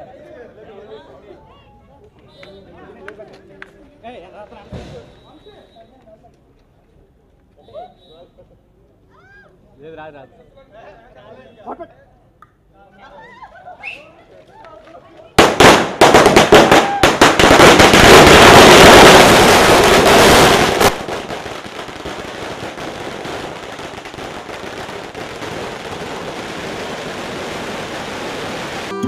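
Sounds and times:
firecrackers banging and crackling: 0:03.2 - 0:05.4, 0:14.7 - 0:29.0.

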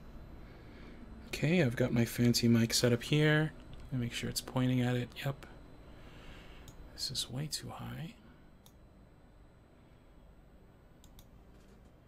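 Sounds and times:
faint computer mouse clicks: 0:11.0 - 0:11.7.

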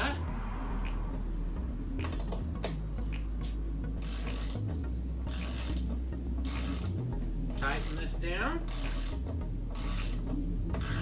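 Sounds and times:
hand ratchet clicking: 0:03.9 - 0:11.0.

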